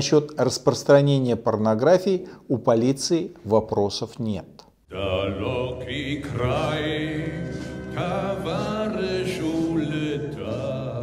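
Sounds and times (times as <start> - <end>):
man singing: 4.9 - 11.0.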